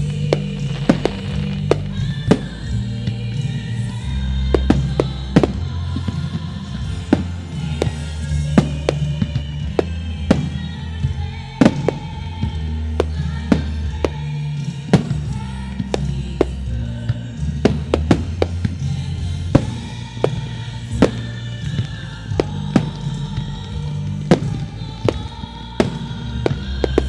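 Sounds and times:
anthem with singing on loudspeakers: 0:00.0 - 0:27.0
firework shells bursting: 0:00.0 - 0:27.0.

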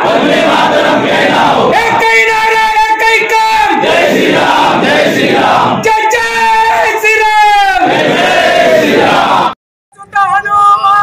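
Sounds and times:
crowd of men shouting: 0:00.0 - 0:09.6.

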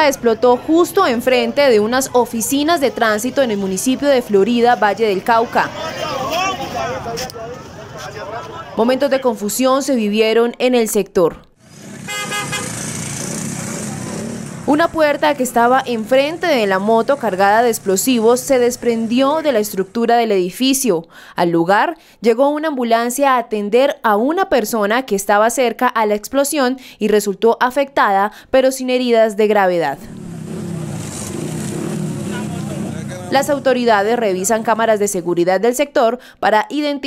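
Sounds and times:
onlookers murmuring: 0:00.0 - 0:09.3, 0:13.4 - 0:19.5, 0:30.5 - 0:34.7
traffic: 0:00.0 - 0:10.2, 0:11.5 - 0:20.9, 0:30.0 - 0:36.5
street noise: 0:00.0 - 0:27.4, 0:28.8 - 0:37.0
vehicle engine running: 0:11.6 - 0:19.9, 0:30.1 - 0:34.7
vehicle horn toot: 0:12.1 - 0:12.8.

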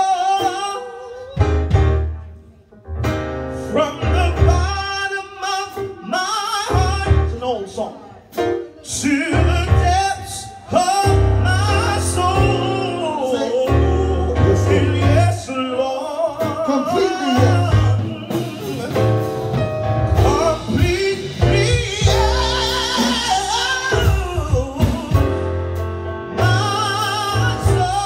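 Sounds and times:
man singing gospel: 0:00.0 - 0:01.8, 0:03.6 - 0:08.0, 0:08.8 - 0:19.5, 0:20.1 - 0:28.0
electric keyboard bass chords: 0:00.0 - 0:07.6, 0:08.4 - 0:28.0.

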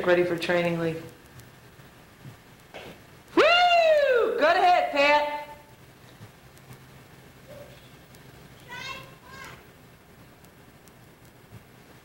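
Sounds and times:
background hiss: 0:00.0 - 0:12.0
child calling high-pitched: 0:08.6 - 0:09.7.

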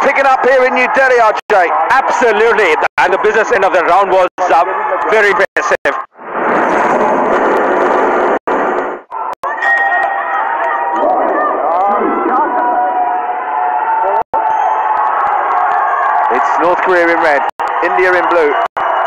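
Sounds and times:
crowd cheering: 0:00.0 - 0:07.0, 0:09.1 - 0:19.0
many voices shouting: 0:09.1 - 0:19.0.

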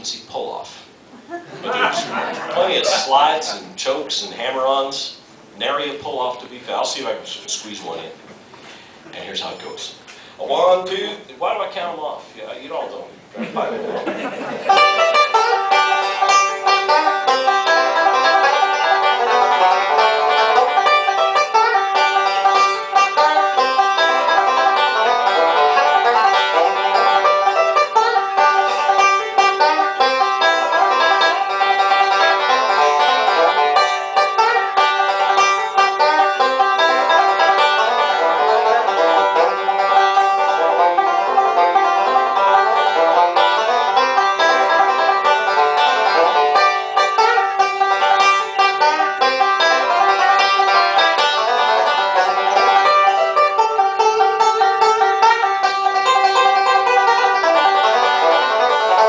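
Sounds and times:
banjo picking: 0:01.6 - 0:07.9, 0:13.8 - 0:59.0.

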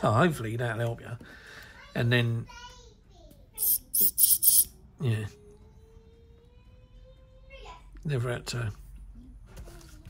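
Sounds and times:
airbrush air bursts: 0:03.6 - 0:04.7.

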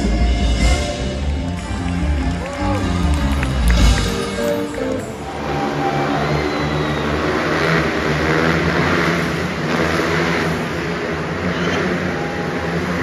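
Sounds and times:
crowd noise: 0:00.0 - 0:13.0
motorcycle engines revving: 0:00.0 - 0:13.0.

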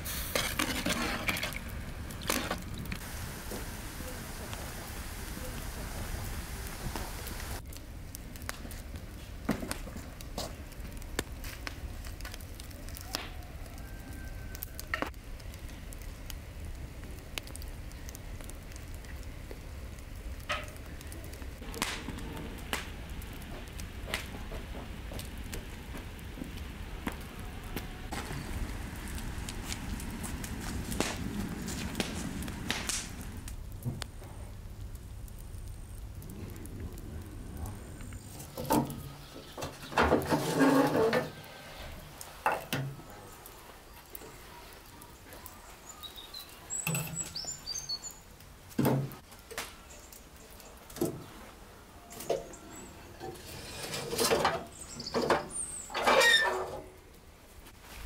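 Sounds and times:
wood fire crackling and popping: 0:00.0 - 0:58.0.

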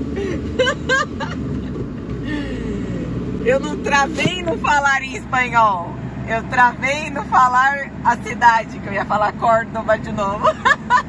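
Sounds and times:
engine and road noise: 0:00.0 - 0:11.0.

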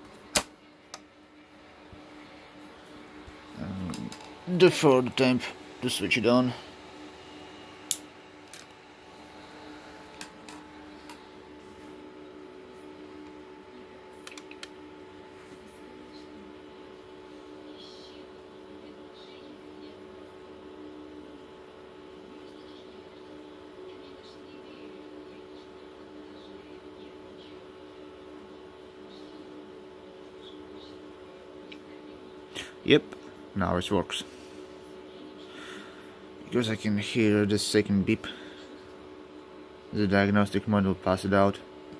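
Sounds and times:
low electrical hum: 0:00.0 - 0:41.9.

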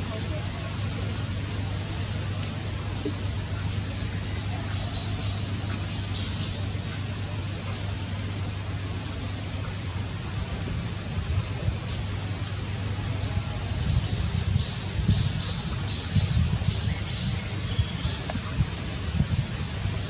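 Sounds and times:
outdoor background hiss: 0:00.0 - 0:20.0.

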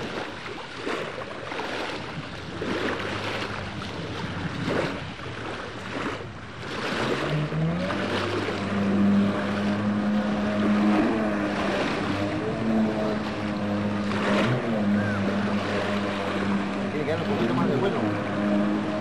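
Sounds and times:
watercraft engine: 0:00.0 - 0:19.0
wind and water noise: 0:00.0 - 0:19.0.

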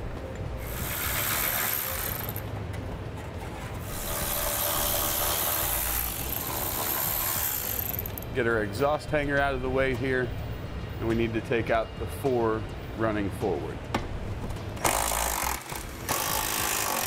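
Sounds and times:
electric ratchet whirring: 0:00.6 - 0:02.4, 0:03.9 - 0:08.2, 0:14.8 - 0:17.0.

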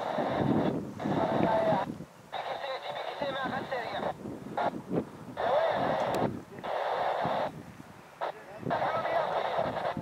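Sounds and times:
wind rumbling on microphone: 0:00.0 - 0:10.0
man's voice over radio: 0:01.2 - 0:04.2, 0:05.4 - 0:07.5, 0:08.2 - 0:10.0.

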